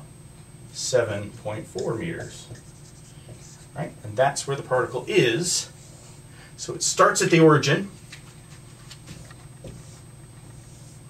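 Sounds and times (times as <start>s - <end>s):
low room hum: 0.0s - 11.0s
marker strokes on whiteboard: 1.8s - 3.8s, 8.5s - 11.0s.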